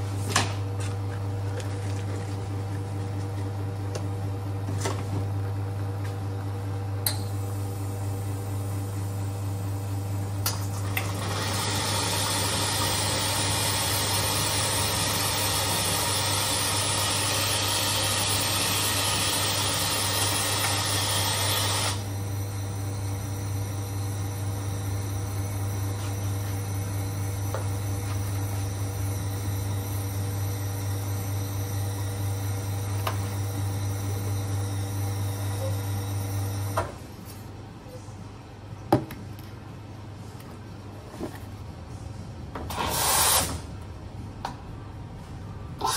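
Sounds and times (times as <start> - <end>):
machine low hum: 0.0 - 38.9.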